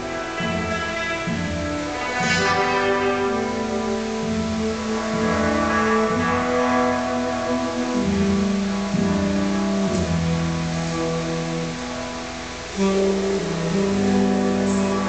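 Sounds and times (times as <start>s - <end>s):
slow jazz ensemble playing: 0.0s - 15.0s.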